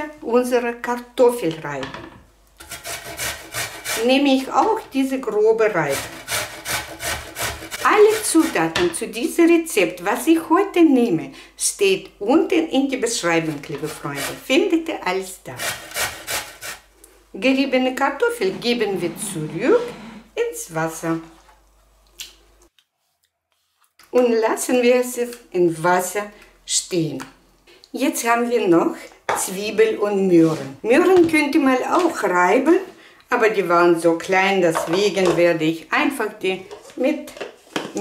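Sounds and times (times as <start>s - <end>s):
potato grated on box grater: 2.6s - 4.5s, 5.6s - 8.8s, 13.6s - 14.7s, 15.5s - 16.8s.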